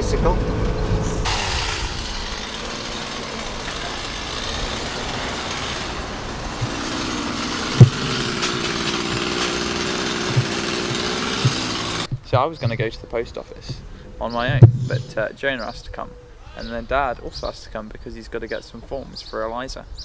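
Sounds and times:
hedge trimmer engine running: 0.6s - 12.1s
thumps: 6.5s - 12.8s, 14.4s - 15.0s.

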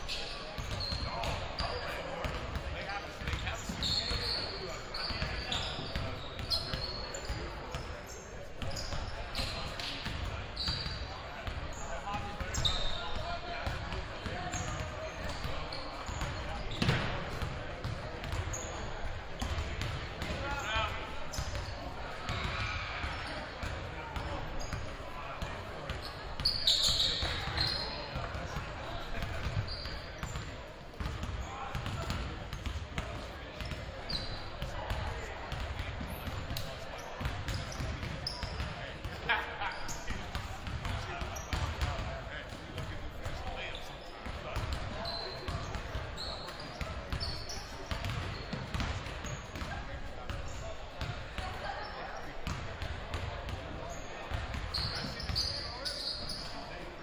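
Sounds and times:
chatter of players and crowd: 0.0s - 57.0s
basketballs bouncing on hardwood floor: 47.9s - 49.7s.

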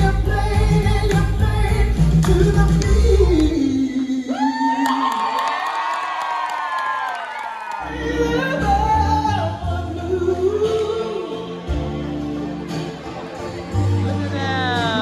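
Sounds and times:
backing music with bass and beat: 0.0s - 4.4s, 7.8s - 15.0s.

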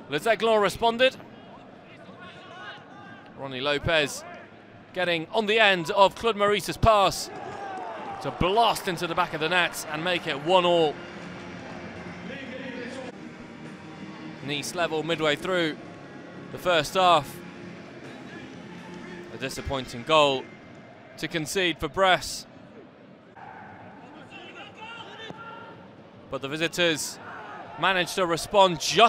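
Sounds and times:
footballers shouting: 7.0s - 11.0s, 23.4s - 25.8s, 26.4s - 29.0s.

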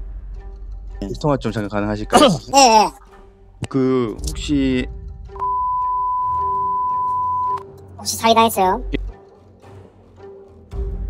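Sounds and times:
censor beep: 5.4s - 7.7s.

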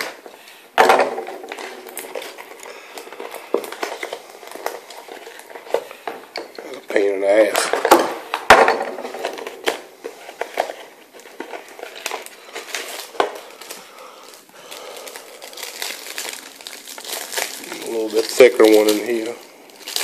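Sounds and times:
foil wrapper crinkling: 0.0s - 20.0s.

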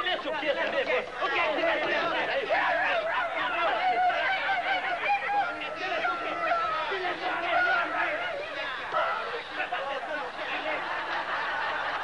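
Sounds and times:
men hooting and shouting: 0.0s - 12.0s.

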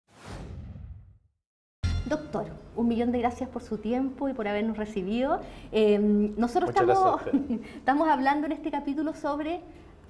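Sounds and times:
falling whoosh: 0.1s - 1.2s.

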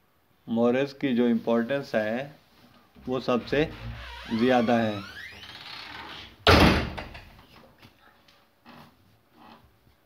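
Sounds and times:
loud thump: 6.4s - 7.3s.

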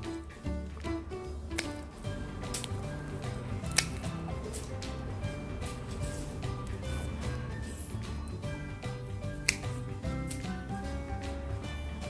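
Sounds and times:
background music: 0.0s - 12.0s
pruning shears snipping twigs: 0.7s - 5.0s, 9.3s - 10.9s.

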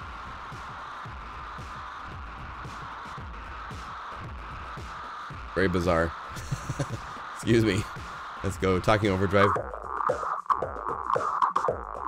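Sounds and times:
distorted drum loop: 0.0s - 12.0s.

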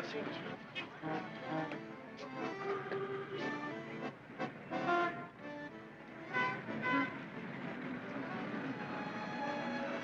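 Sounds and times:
street noise: 0.0s - 10.0s
car horn toots: 6.3s - 7.2s.

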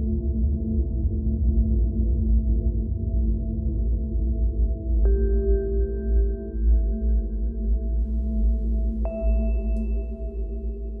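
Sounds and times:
low ambient drone: 0.0s - 11.0s.

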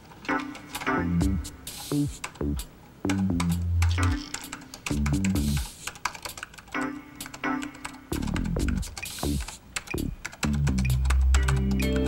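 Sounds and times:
keyboard typing clicks: 0.0s - 12.0s
background music: 0.2s - 5.9s, 6.7s - 12.0s.

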